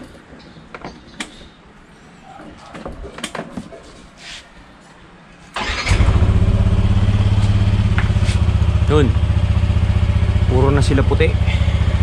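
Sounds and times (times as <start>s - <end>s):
scooter engine starting: 5.6s - 10.5s
scooter engine idling: 5.6s - 12.0s.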